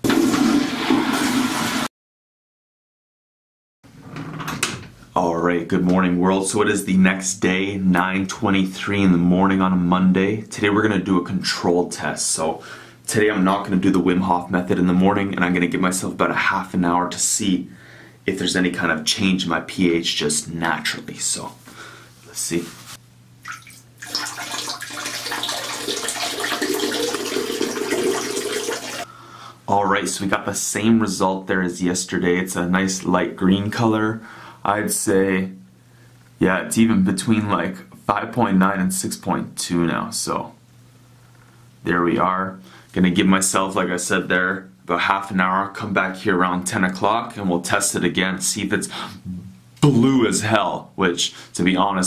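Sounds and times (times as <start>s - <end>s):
urine splashing into toilet water: 23.4s - 29.1s.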